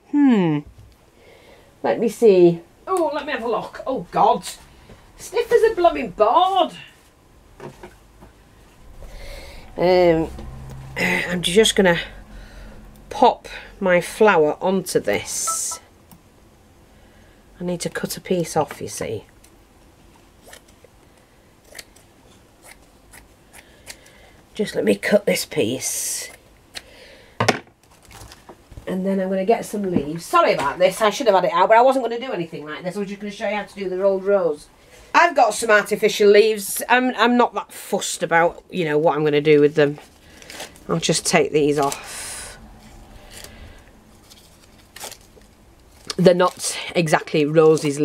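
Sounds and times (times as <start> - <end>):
artificial leaves rustling: 39.4 - 48.0.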